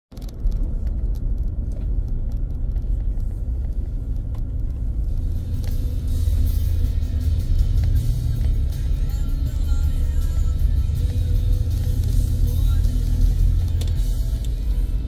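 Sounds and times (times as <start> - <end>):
car interior rumble: 0.1 - 15.0
music playing: 4.8 - 15.0.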